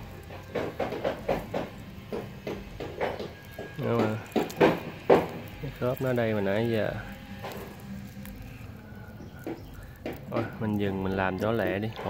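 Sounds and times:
low steady hum: 0:00.0 - 0:12.0
plastic film crinkling: 0:00.0 - 0:12.0.

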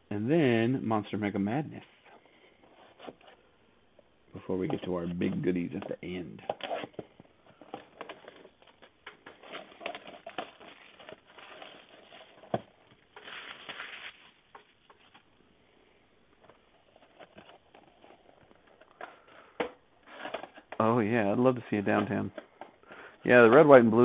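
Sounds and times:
cardboard box and plastic rustling: 0:06.4 - 0:15.3, 0:16.4 - 0:19.4.

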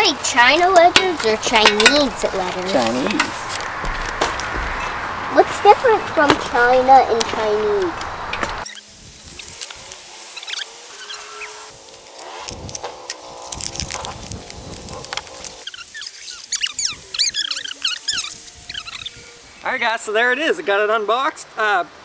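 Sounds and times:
packaging crackling and rustling: 0:09.1 - 0:16.7
high chirps: 0:15.6 - 0:19.7.

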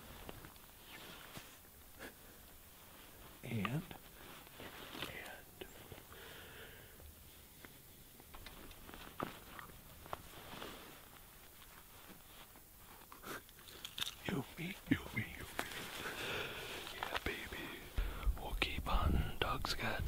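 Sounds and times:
small clicks and rustles: 0:00.0 - 0:06.1, 0:07.0 - 0:17.5
people whispering softly: 0:00.8 - 0:06.2, 0:14.2 - 0:20.0.

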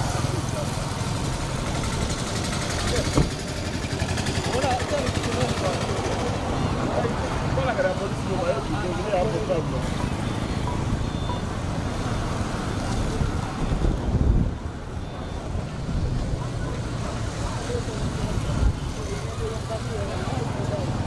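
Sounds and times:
vehicles passing: 0:00.0 - 0:21.0
faint voices: 0:12.7 - 0:21.0
wind buffeting microphone: 0:13.0 - 0:16.5.

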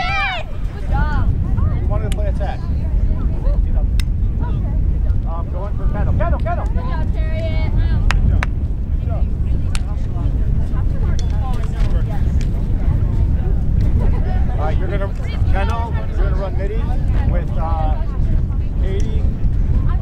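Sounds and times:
distant shouts and calls: 0:00.0 - 0:01.3
wind rumble on microphone: 0:00.0 - 0:20.0.

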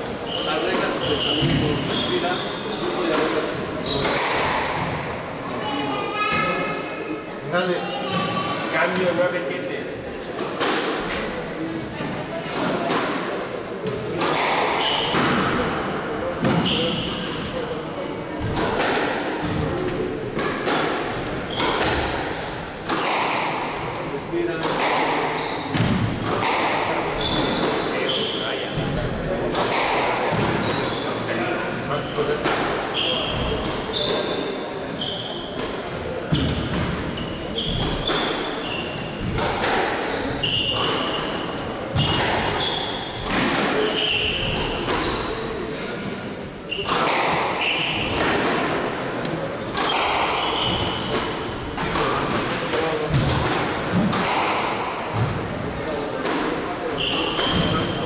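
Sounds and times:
squash ball hitting rackets and walls: 0:00.1 - 0:05.3, 0:10.2 - 0:58.0
shoes squeaking on wooden floor: 0:24.8 - 0:25.7, 0:30.6 - 0:31.2, 0:32.9 - 0:35.6, 0:37.1 - 0:39.3, 0:40.1 - 0:41.2, 0:42.0 - 0:45.5, 0:49.8 - 0:51.1.

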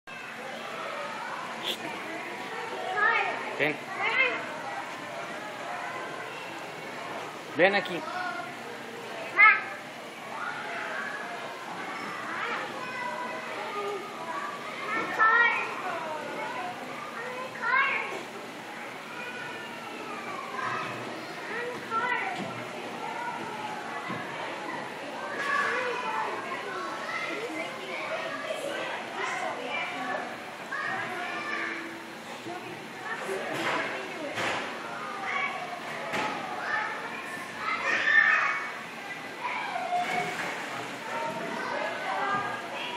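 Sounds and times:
background hubbub: 0:00.1 - 0:42.9
children's voices chattering: 0:00.1 - 0:42.9.

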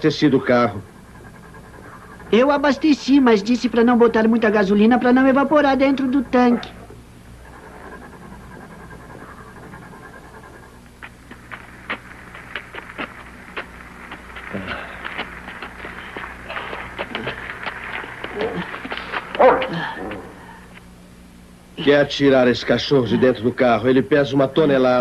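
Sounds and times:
heavy breathing: 0:06.8 - 0:20.8
footsteps scuffing on road: 0:11.0 - 0:20.6
men grunting: 0:19.4 - 0:20.7.

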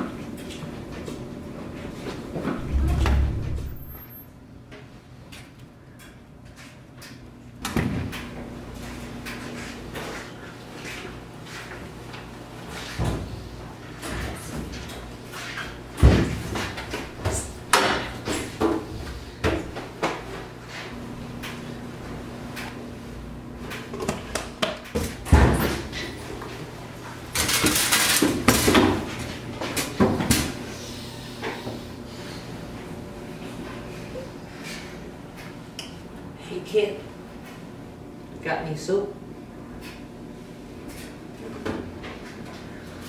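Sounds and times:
steady low hum: 0:02.4 - 0:04.4
washing machine doors opening and shutting: 0:02.5 - 0:04.3, 0:16.0 - 0:20.0, 0:23.7 - 0:26.3
heavy thump: 0:02.6 - 0:04.0.

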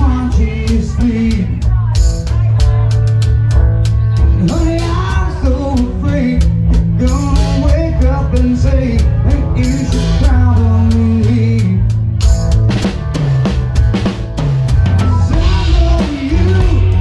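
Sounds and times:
bass line: 0:00.0 - 0:17.0
drum kit beat: 0:00.0 - 0:17.0
sustained pitched notes: 0:08.8 - 0:17.0.

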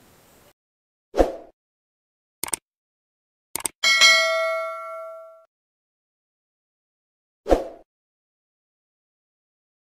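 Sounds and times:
bell ding: 0:03.8 - 0:05.5.

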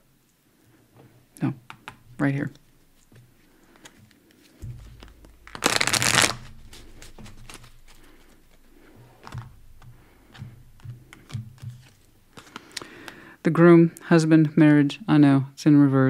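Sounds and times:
cards shuffling: 0:01.7 - 0:13.2
cards tapping and clicking: 0:01.7 - 0:13.2.

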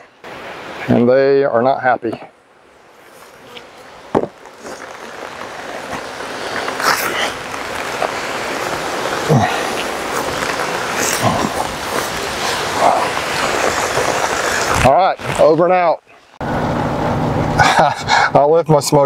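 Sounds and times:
rain hissing: 0:00.0 - 0:01.5, 0:02.2 - 0:18.4.

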